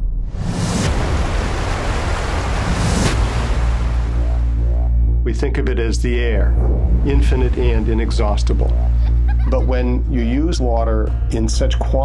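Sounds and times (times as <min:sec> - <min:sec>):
deep bass drone: 0:00.0 - 0:12.0
loud rushing noise: 0:00.3 - 0:04.6.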